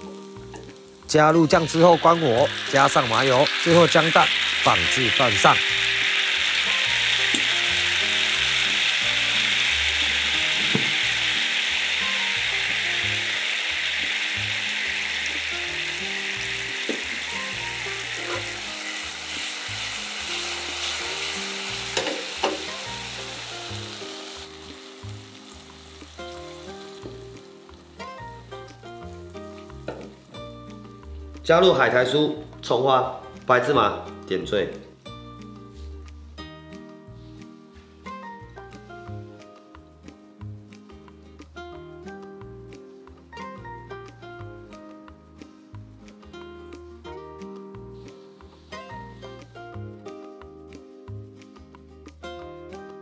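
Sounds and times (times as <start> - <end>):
sauce sizzling in hot oil: 0.0 - 51.7.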